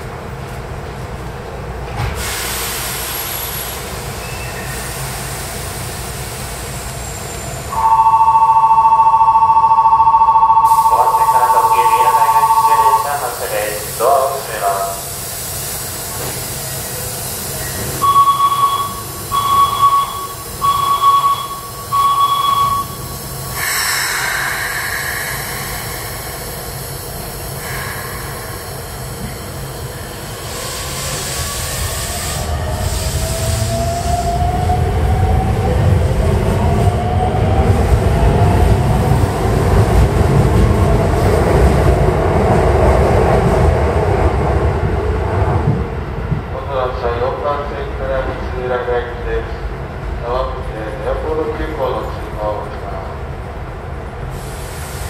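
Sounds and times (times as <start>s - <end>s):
train rumble: 0.0s - 55.0s
electronic beeps: 7.8s - 13.2s, 18.0s - 23.1s.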